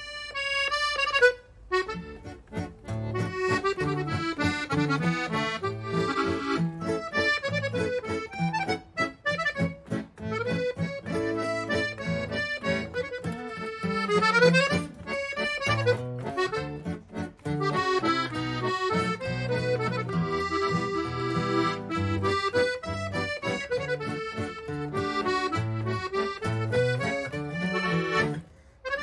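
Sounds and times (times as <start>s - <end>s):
accordion playing a waltz: 0.0s - 29.0s
acoustic guitar: 0.0s - 29.0s.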